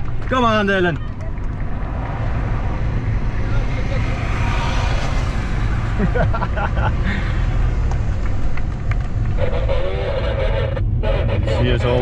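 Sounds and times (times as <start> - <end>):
car road and engine rumble: 0.0 - 12.0.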